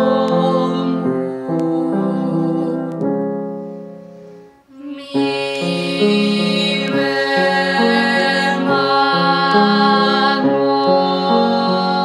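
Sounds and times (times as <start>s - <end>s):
girl and woman singing: 0.0s - 3.2s, 4.7s - 12.0s
grand piano playing: 0.0s - 12.0s.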